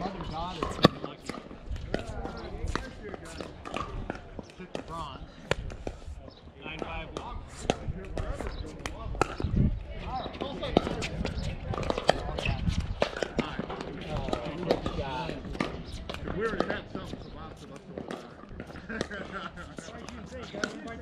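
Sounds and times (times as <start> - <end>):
voices: 0.0 - 21.0.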